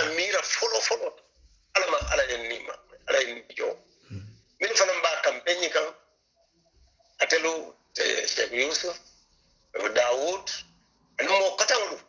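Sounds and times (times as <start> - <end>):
man speaking: 0.0 - 6.0, 7.2 - 9.1, 9.7 - 12.0.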